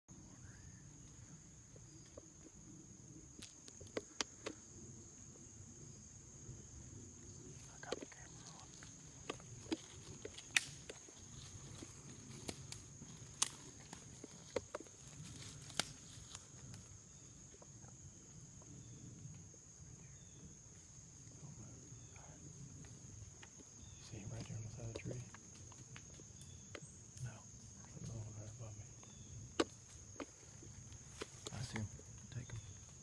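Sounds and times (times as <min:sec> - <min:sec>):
twigs snapping: 0:07.9 - 0:16.9.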